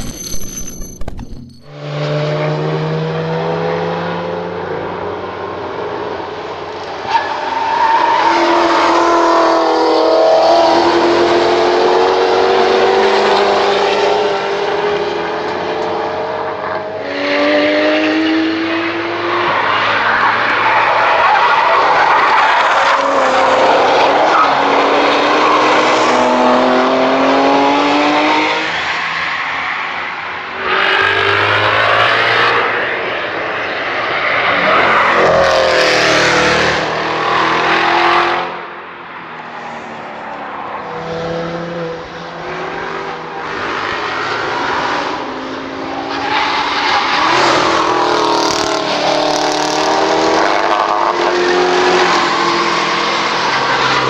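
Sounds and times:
race car engines accelerating: 1.7 - 54.0.

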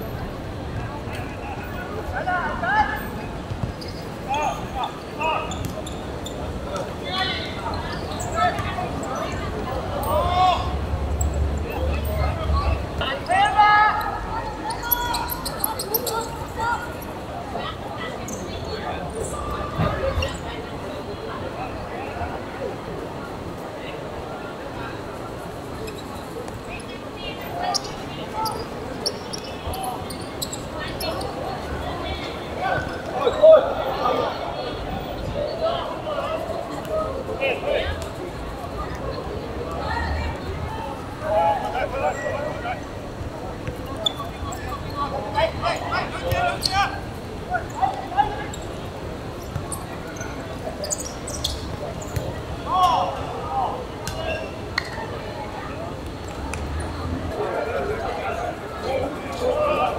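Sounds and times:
players calling out: 1.3 - 20.7, 38.8 - 59.9.

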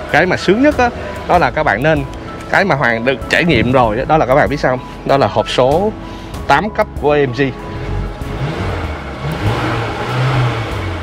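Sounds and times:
car engine revving: 7.6 - 11.0.

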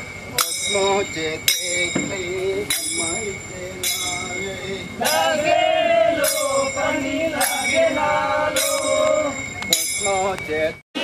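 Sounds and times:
metal percussion ringing: 0.0 - 10.8
men chanting: 0.3 - 10.8.

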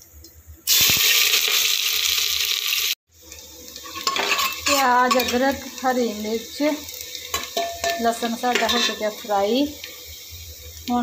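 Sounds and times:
food sizzling in hot oil: 0.6 - 11.0.

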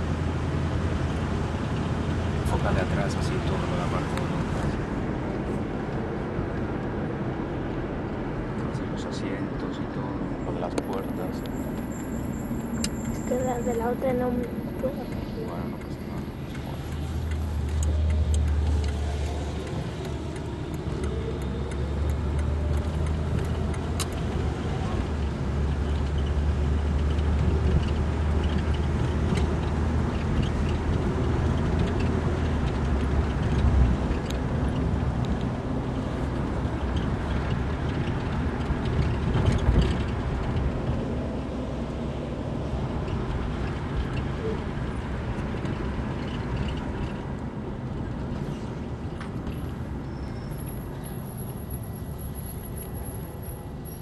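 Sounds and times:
road and traffic noise: 0.0 - 54.0.

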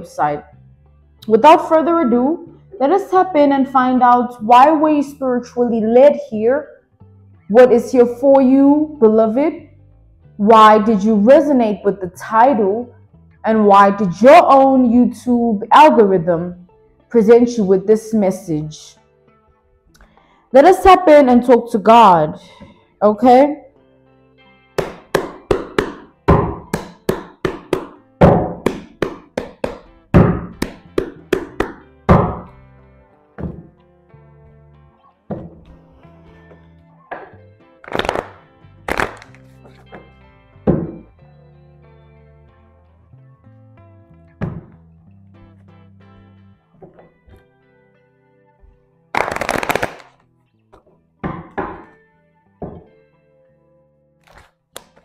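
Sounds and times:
soft background music: 0.0 - 55.0
cards being shuffled: 37.8 - 40.0, 49.2 - 50.2, 54.2 - 55.0.

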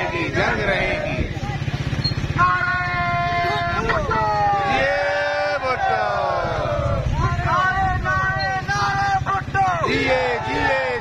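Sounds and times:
low steady rumble: 0.0 - 11.0
marching crowd: 0.0 - 11.0
person shouting slogan: 2.4 - 11.0.

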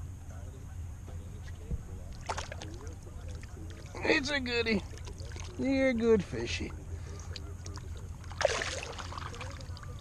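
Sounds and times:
fish splashing into water: 2.1 - 4.0, 7.7 - 10.0.

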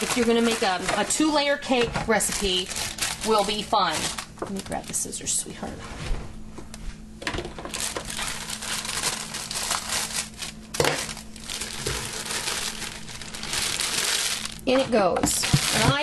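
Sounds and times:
plastic bag crinkling: 0.0 - 5.4, 7.4 - 16.0.

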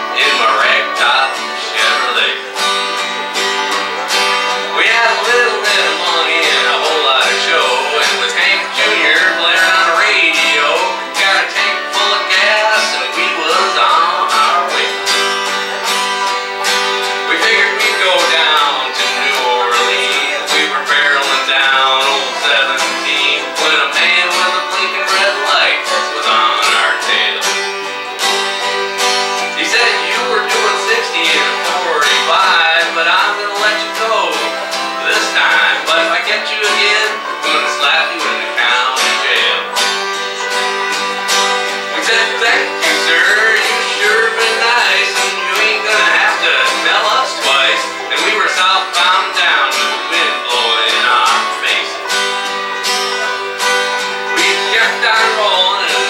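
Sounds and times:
acoustic bass: 0.0 - 56.0
plucked strings: 0.0 - 56.0
strummed acoustic guitar: 0.0 - 56.0.

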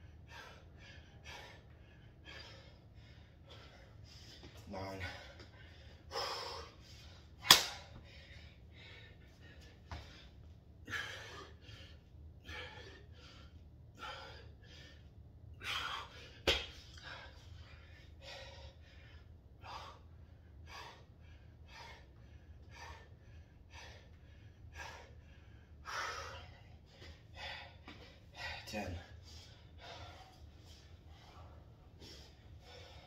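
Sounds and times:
man breathing hard: 0.0 - 33.0.

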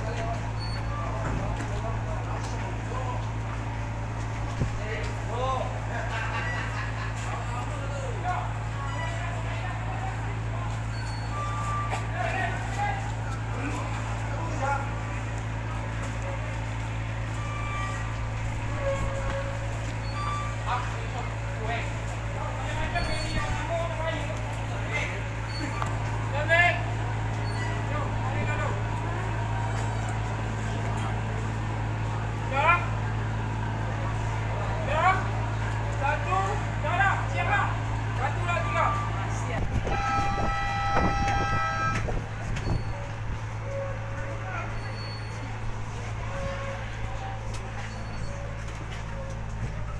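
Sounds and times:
speedboat engines idling: 0.0 - 49.9
voices of passengers: 0.0 - 49.9
boat horn: 17.3 - 20.6, 39.7 - 45.2, 45.9 - 49.9.

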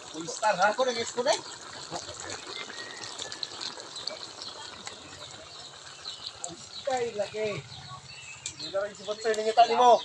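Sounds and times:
stew boiling with bubbling hiss: 0.0 - 10.0.

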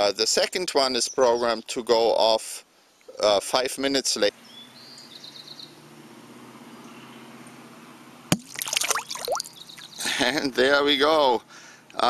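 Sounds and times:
sharp pop: 8.3 - 8.6
water splashing in a bucket: 8.3 - 9.5.

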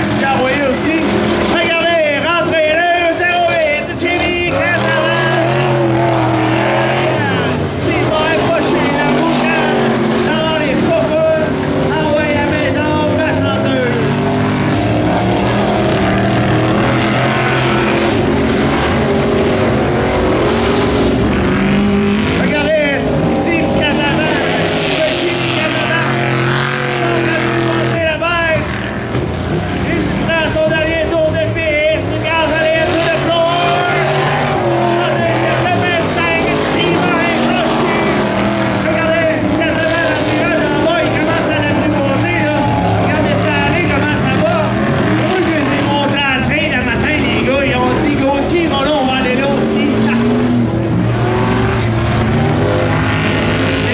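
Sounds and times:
race car engine revving: 0.0 - 53.9.

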